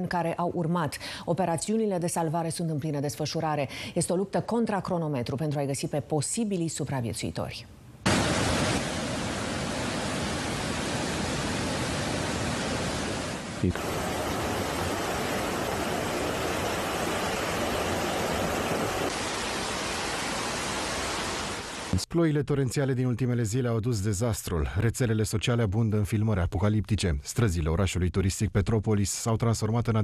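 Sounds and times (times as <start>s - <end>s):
floodwater rushing: 8.1s - 22.0s.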